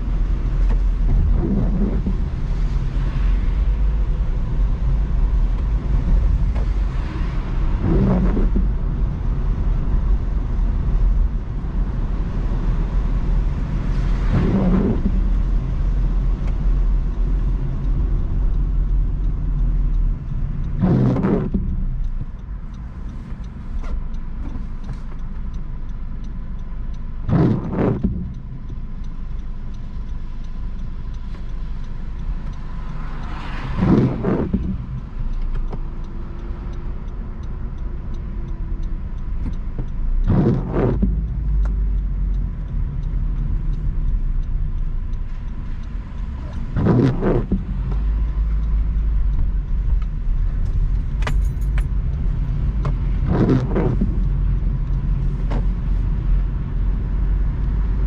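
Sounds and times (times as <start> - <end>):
car engine and road rumble: 0.0 - 58.0
windshield wipers sweeping: 0.0 - 58.0.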